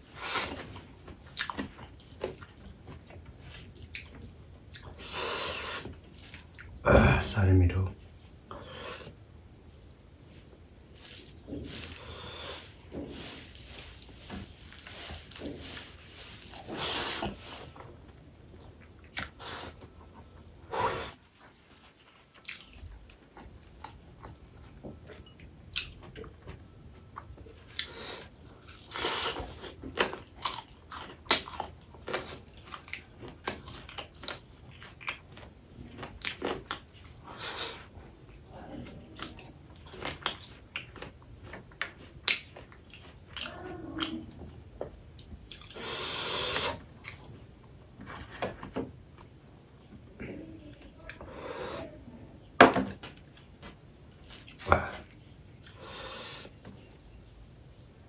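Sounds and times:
close chewing and lip smacks: 0:00.0 - 0:06.8, 0:08.0 - 0:51.4, 0:53.0 - 0:58.0.

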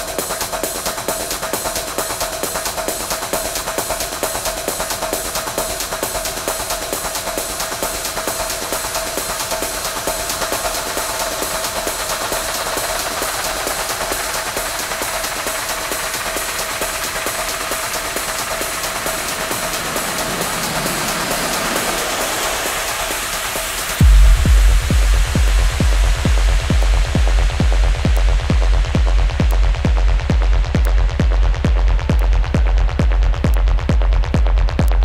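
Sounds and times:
fast ticking percussion: 0:00.0 - 0:35.0
heavy kick drum: 0:00.0 - 0:35.0.

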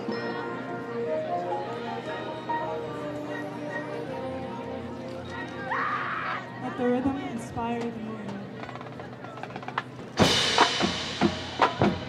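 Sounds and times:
crowd voices: 0:00.0 - 0:12.0
marching band chord: 0:10.2 - 0:12.0.

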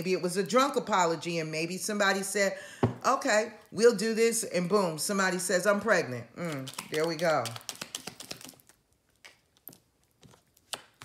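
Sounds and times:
cards clicking and tapping: 0:06.7 - 0:08.6.

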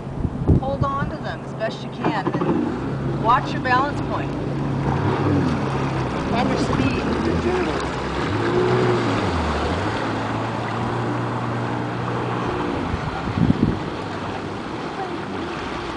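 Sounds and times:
jet ski engine running: 0:00.0 - 0:15.9
water splashing on hull: 0:00.4 - 0:15.9.

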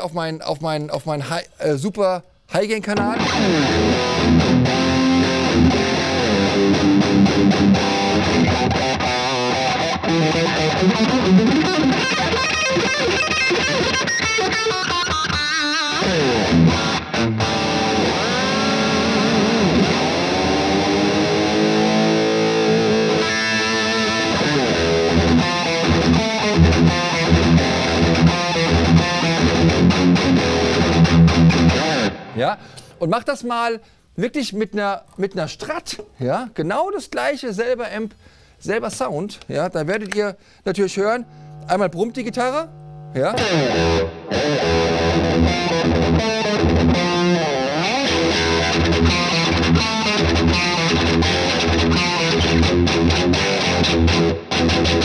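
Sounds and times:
distorted electric guitar riffing: 0:03.0 - 0:32.4, 0:40.7 - 0:55.0.

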